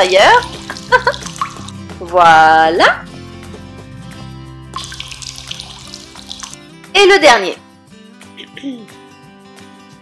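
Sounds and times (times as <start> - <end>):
soft background music: 0.0 - 10.0
milk pouring into plastic cup: 4.8 - 6.6.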